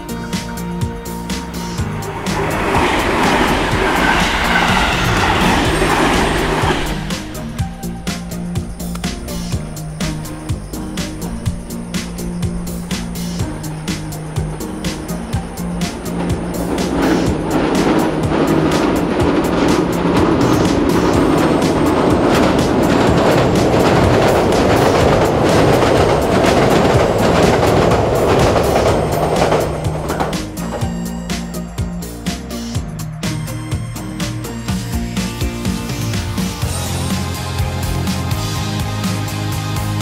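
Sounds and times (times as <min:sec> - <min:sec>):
background music with steady beat: 0:00.0 - 0:40.0
train rushing rumble: 0:00.0 - 0:40.0.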